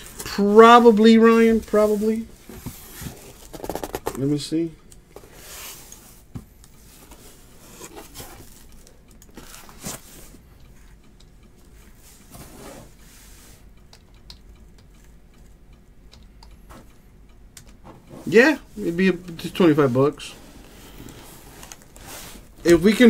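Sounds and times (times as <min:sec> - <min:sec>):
cardboard and wrappers rustling: 0:00.0 - 0:04.3, 0:07.0 - 0:10.4, 0:18.2 - 0:23.0.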